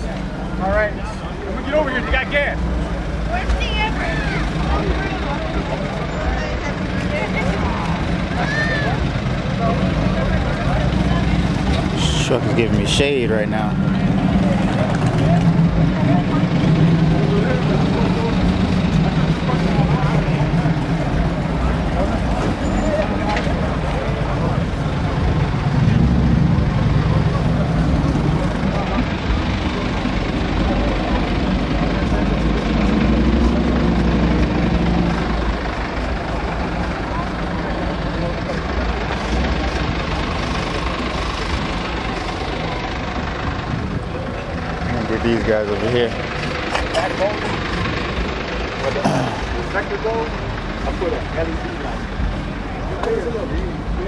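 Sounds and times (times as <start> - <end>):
people talking: 0.0 - 34.1, 35.1 - 54.0
vehicle engine idling: 0.0 - 54.0.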